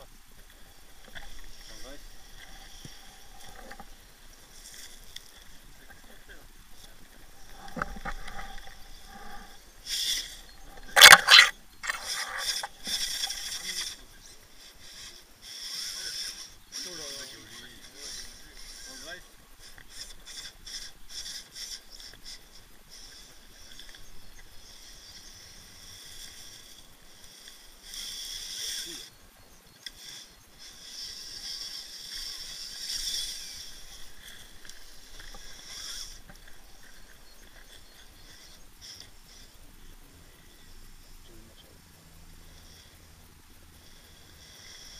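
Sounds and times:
toy car motor and gears whining: 0:00.0 - 0:44.9.

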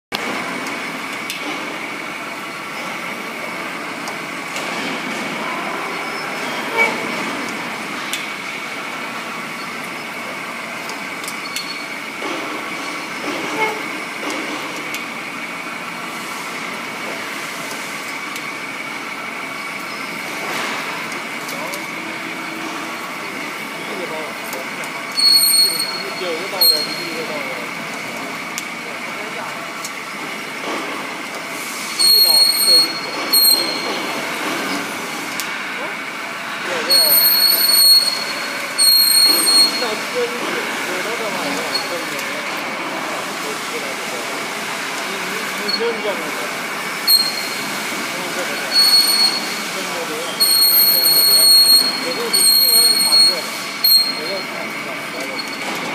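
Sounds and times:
pipe cutting machine whining: 0:17.7 - 0:27.8, 0:31.9 - 0:55.9.

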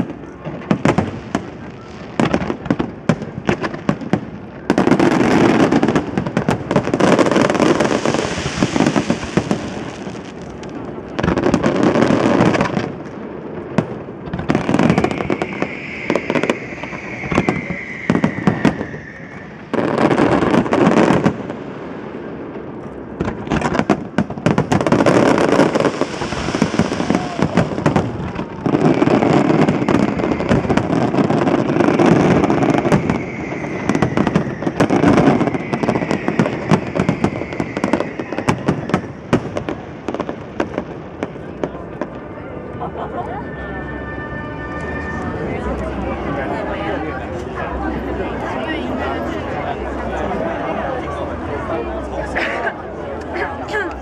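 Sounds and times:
fireworks bursting with bangs and crackles: 0:00.0 - 0:52.4.

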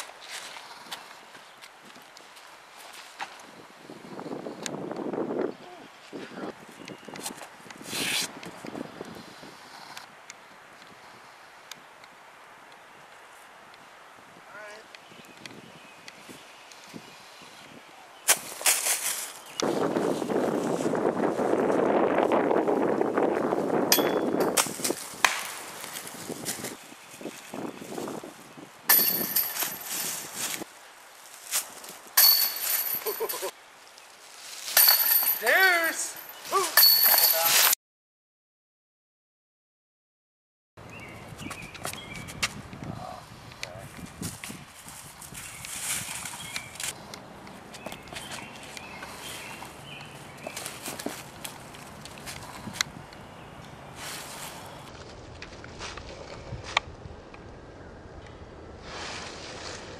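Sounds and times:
footsteps and scuffs: 0:00.0 - 0:03.5, 0:06.9 - 0:08.7, 0:18.3 - 0:21.8, 0:24.5 - 0:28.2, 0:41.3 - 0:42.9, 0:43.8 - 0:52.9
wind rushing through trees: 0:00.0 - 0:37.7, 0:40.8 - 0:59.9
footsteps crunching dry leaves: 0:18.3 - 0:23.8, 0:24.5 - 0:28.6, 0:29.3 - 0:37.7, 0:44.0 - 0:47.0, 0:47.6 - 0:52.7, 0:53.9 - 0:56.2.

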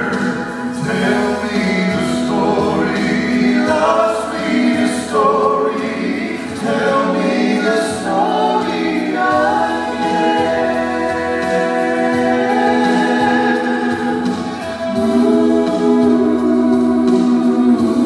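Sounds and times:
male vocal trio singing harmony: 0:00.0 - 0:18.0.

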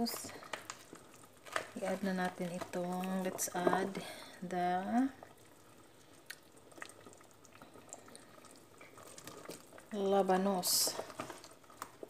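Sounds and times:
soup simmering with bubbling: 0:00.0 - 0:12.0.

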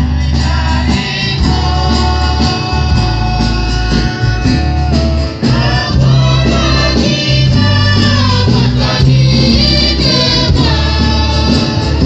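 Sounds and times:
acoustic guitar: 0:00.0 - 0:12.0
choir singing a hymn: 0:00.0 - 0:12.0.

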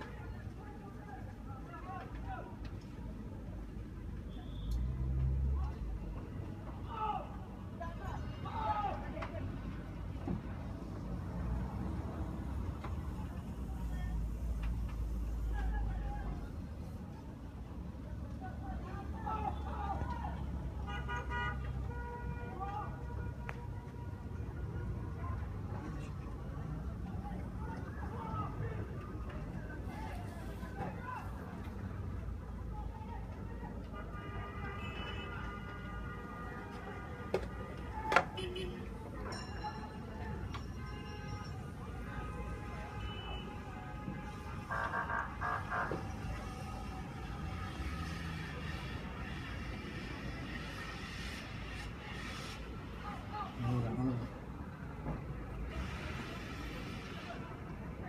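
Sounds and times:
voices: 0:12.7 - 0:49.3
vehicle horn: 0:20.8 - 0:23.7, 0:34.0 - 0:38.9, 0:40.9 - 0:49.5
loud horn blasts: 0:34.0 - 0:38.9.

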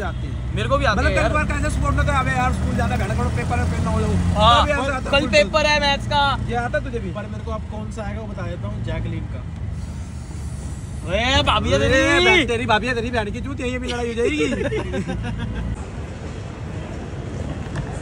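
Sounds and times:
men talking: 0:00.0 - 0:09.6, 0:11.0 - 0:15.8
vehicle engine humming: 0:00.0 - 0:18.0.

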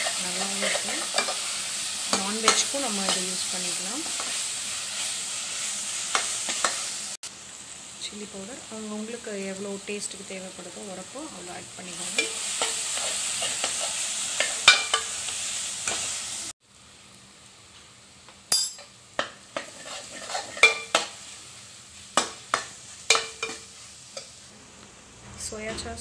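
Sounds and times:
metal spatula scraping a pan: 0:00.0 - 0:03.4, 0:12.1 - 0:16.1, 0:19.2 - 0:21.2
vegetables sizzling in a pan: 0:00.0 - 0:26.0.

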